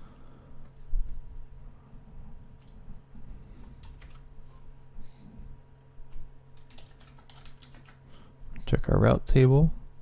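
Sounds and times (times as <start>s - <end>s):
low electrical hum: 0.0s - 10.0s
keyboard keystrokes: 3.8s - 4.3s, 6.6s - 8.0s.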